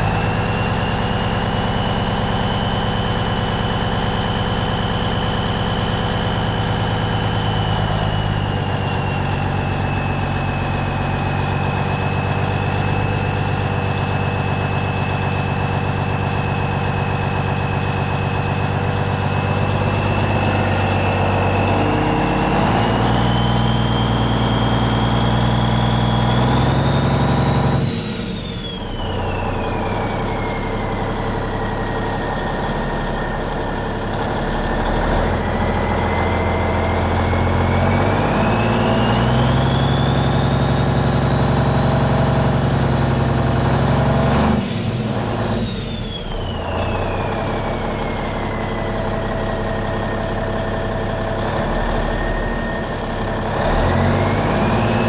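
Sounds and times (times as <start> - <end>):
diesel truck engine running: 0.0 - 55.0
turbocharger whistle: 0.0 - 55.0.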